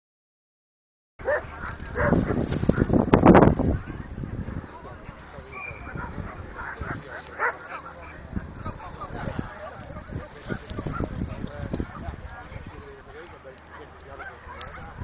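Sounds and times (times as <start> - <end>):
dog barking: 1.2 - 2.8, 5.8 - 7.9, 14.2 - 15.0
people's voices: 1.2 - 15.0.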